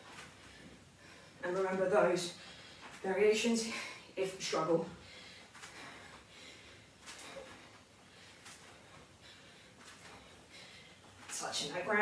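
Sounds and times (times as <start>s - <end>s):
low background noise: 0.0s - 12.0s
woman breathing hard: 5.0s - 11.2s.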